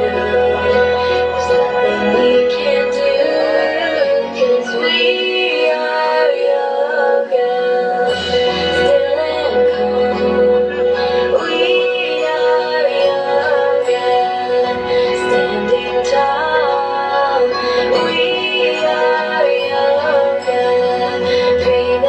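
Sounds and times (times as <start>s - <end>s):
instrumental pop backing: 0.0s - 22.0s
person singing: 0.0s - 22.0s.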